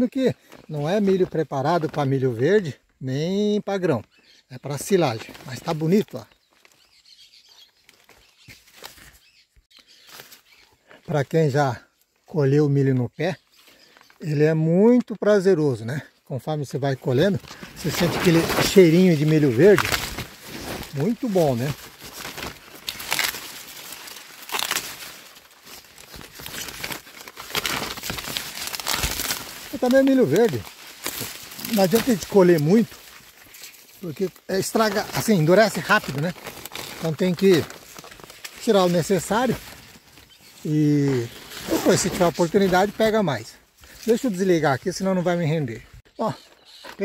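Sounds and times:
faint birds chirping: 0:00.0 - 0:22.0, 0:37.1 - 0:47.0
corn leaves rustling: 0:00.0 - 0:47.0
louder crackles: 0:17.5 - 0:32.9.

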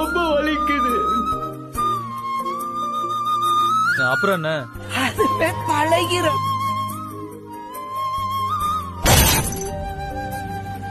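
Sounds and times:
background music melody: 0:00.0 - 0:10.9
glass shattering: 0:09.0 - 0:09.9.

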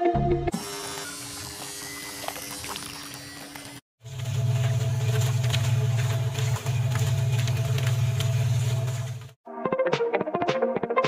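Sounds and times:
machine droning: 0:00.5 - 0:09.4.

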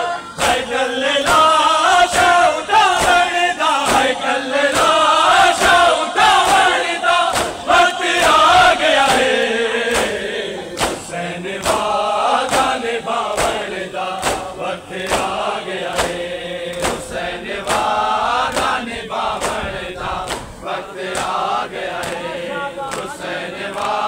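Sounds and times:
men chanting together: 0:00.0 - 0:24.0
hands slapping bare chests: 0:01.3 - 0:05.0, 0:05.6 - 0:07.6, 0:09.0 - 0:10.2, 0:10.8 - 0:18.8, 0:19.4 - 0:19.6, 0:20.2 - 0:20.5, 0:21.1 - 0:22.3, 0:22.9 - 0:23.1, 0:23.7 - 0:24.0.

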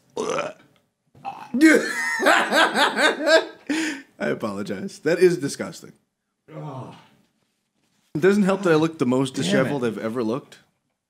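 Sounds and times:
man burping: 0:00.1 - 0:02.2
man laughing hard: 0:01.6 - 0:04.0.

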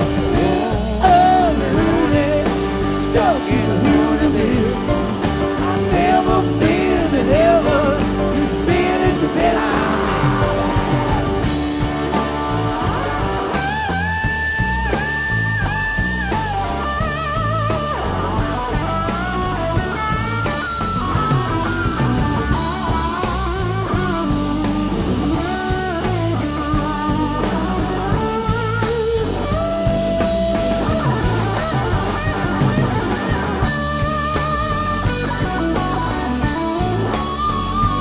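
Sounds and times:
bass guitar: 0:00.0 - 0:38.0
drums: 0:00.0 - 0:38.0.

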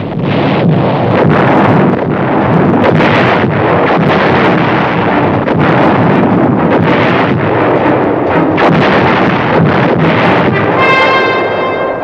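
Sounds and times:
artillery guns firing: 0:00.0 - 0:12.0
battle noise din: 0:00.0 - 0:12.0.

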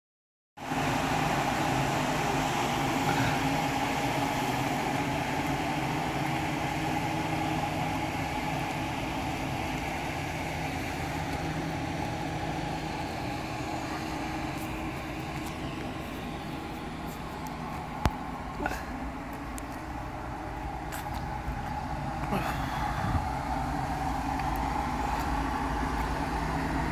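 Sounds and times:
pickup truck engine idling: 0:00.6 - 0:26.9.

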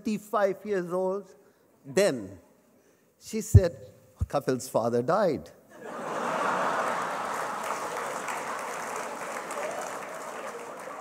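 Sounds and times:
audience laughing: 0:05.7 - 0:09.6
audience clapping: 0:06.4 - 0:11.0.

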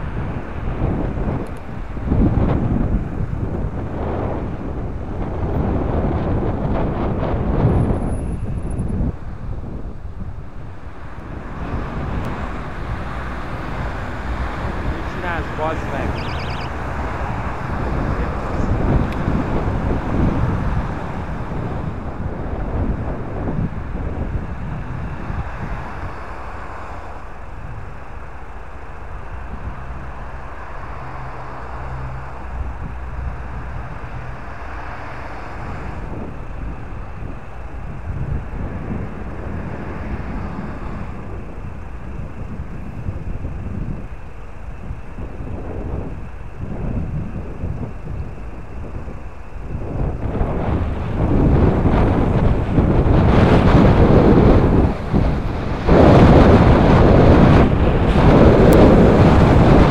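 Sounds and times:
road and wind noise: 0:00.0 - 0:59.9.

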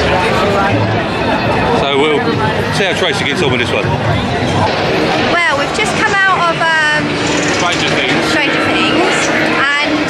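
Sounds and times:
crowd din: 0:00.0 - 0:10.0.

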